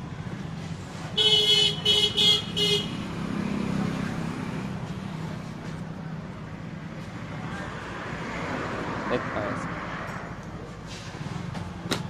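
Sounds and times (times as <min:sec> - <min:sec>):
vehicle horn honking: 0:01.2 - 0:03.0.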